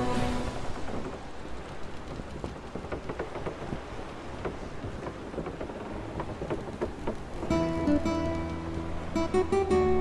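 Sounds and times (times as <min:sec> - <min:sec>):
steady rain: 0:00.0 - 0:10.0
raindrop ticks: 0:00.7 - 0:09.5.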